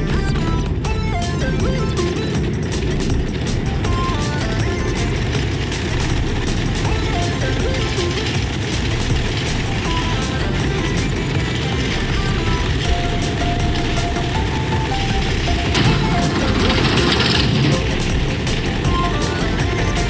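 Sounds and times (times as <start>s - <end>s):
background music with melody: 0.0s - 20.0s.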